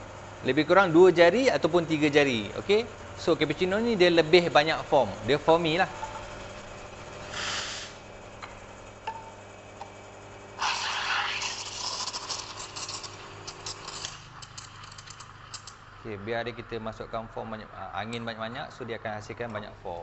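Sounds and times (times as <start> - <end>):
steam wand hissing: 7.3 - 8.0, 10.6 - 12.5
milk crackling while frothing: 10.5 - 17.7.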